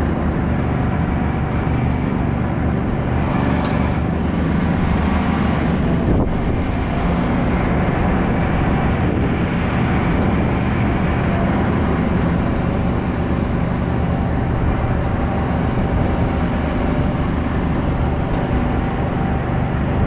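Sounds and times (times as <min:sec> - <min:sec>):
utility vehicle engine running: 0:00.0 - 0:20.0.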